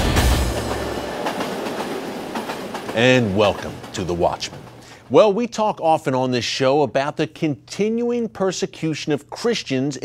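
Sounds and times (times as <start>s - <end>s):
train rolling on rails: 0.0s - 6.0s
wheels clattering over track: 0.4s - 4.8s.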